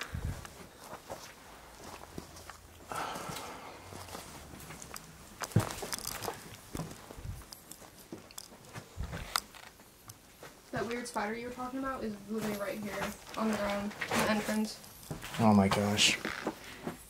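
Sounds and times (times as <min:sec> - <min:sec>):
footsteps on debris: 0:04.0 - 0:17.0.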